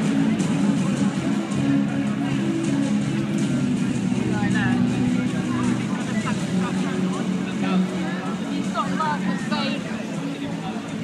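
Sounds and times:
crowd voices and shouts: 0:00.0 - 0:11.0
loud music over loudspeakers: 0:00.0 - 0:11.0.

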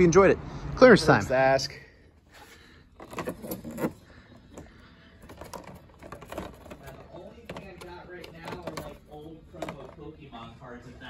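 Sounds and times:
plastic packs clicking and clattering: 0:03.0 - 0:10.0.

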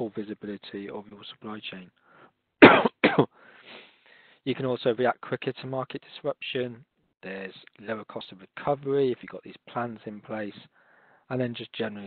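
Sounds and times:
man coughing: 0:02.6 - 0:03.3.

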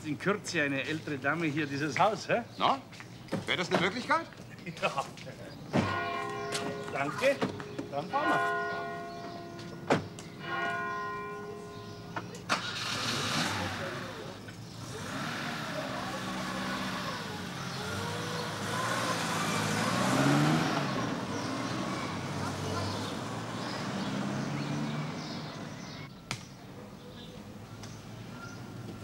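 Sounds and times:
church bell ringing: 0:05.8 - 0:12.4
car doors slamming: 0:09.8 - 0:10.2
car engine starting and pulling away: 0:12.3 - 0:26.1.

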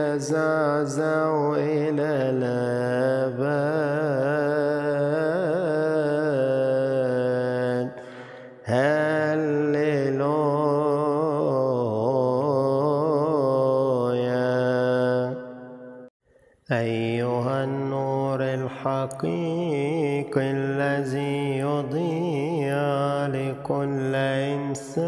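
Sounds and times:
person chanting a hymn: 0:00.0 - 0:15.6, 0:16.7 - 0:25.0.

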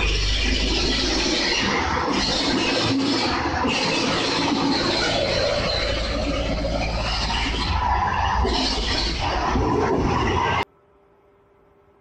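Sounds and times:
tractor engine running: 0:00.0 - 0:10.6.

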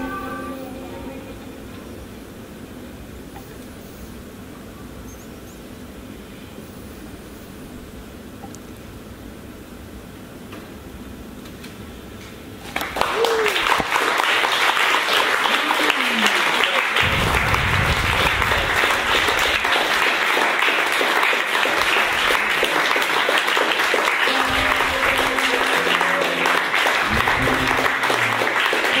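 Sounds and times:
audience applause: 0:12.6 - 0:29.0.

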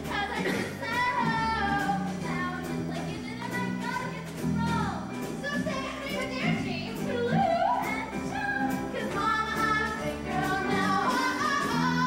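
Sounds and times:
young people singing: 0:00.0 - 0:04.4, 0:05.6 - 0:12.0.

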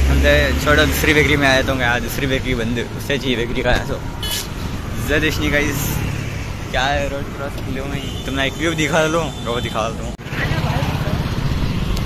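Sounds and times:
wind and road noise in vehicle: 0:00.0 - 0:12.0.

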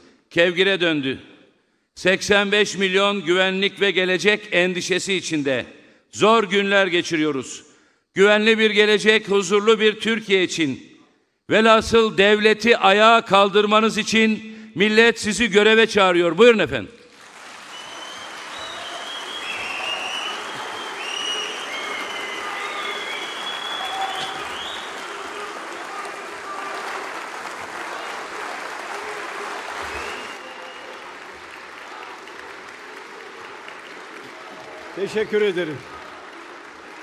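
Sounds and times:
audience applauding: 0:17.1 - 0:37.0
scattered cheers: 0:17.5 - 0:37.0.

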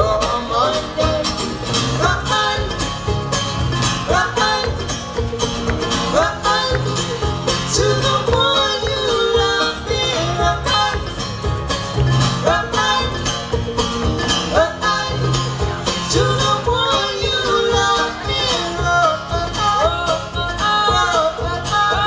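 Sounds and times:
person singing: 0:00.0 - 0:03.0, 0:04.0 - 0:05.0, 0:06.0 - 0:11.5, 0:12.3 - 0:13.7, 0:14.4 - 0:22.0
acoustic guitar: 0:00.0 - 0:22.0
banjo: 0:00.0 - 0:22.0
upright double bass: 0:00.0 - 0:22.0.

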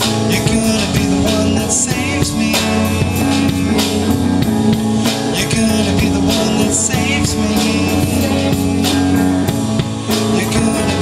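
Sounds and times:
bass guitar: 0:00.0 - 0:11.0
drum kit beat: 0:00.0 - 0:11.0
electric guitar: 0:00.0 - 0:11.0.

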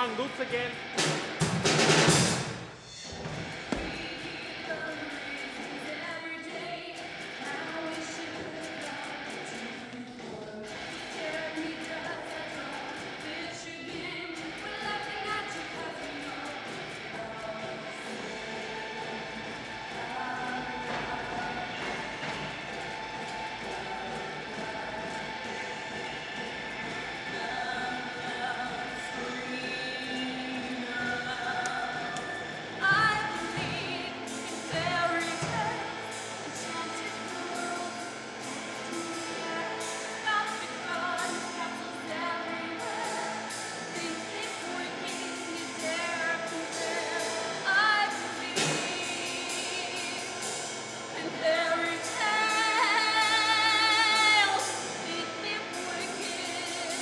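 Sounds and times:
metal song with vocals: 0:03.0 - 0:57.0.

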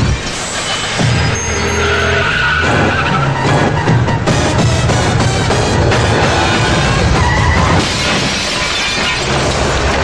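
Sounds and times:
tyres screeching: 0:00.0 - 0:09.8
car engine noise: 0:00.0 - 0:10.0
dramatic film music: 0:00.0 - 0:10.0.

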